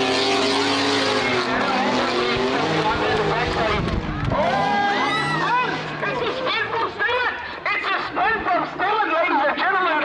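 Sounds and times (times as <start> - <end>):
people talking: 1.6 - 10.0.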